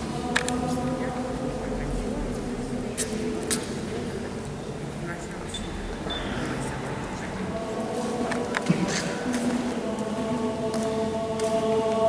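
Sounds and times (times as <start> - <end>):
drone of low held tones: 0.0 - 10.5.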